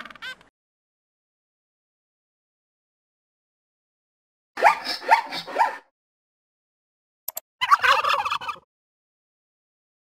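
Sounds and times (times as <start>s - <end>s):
turkey gobble: 7.6s - 8.7s.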